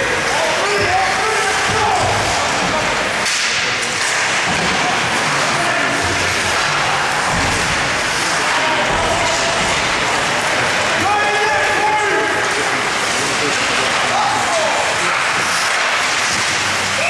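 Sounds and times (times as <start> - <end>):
spectator noise: 0.0 - 17.0.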